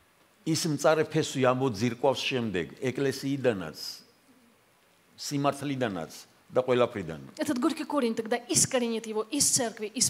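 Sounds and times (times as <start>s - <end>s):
man speaking: 0.4s - 4.1s, 5.2s - 7.4s.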